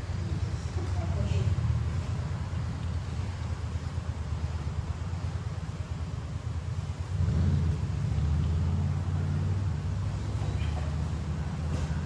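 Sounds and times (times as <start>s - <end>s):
fan air blowing on microphone: 0.0s - 12.0s.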